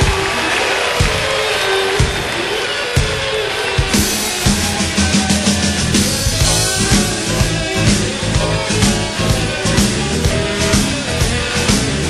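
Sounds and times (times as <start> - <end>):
drum hits: 0.0 - 12.0
electric blues band playing: 0.0 - 12.0.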